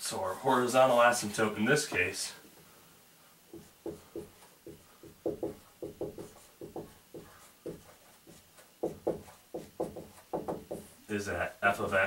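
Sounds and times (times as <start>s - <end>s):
marker writing on whiteboard: 3.5s - 11.0s.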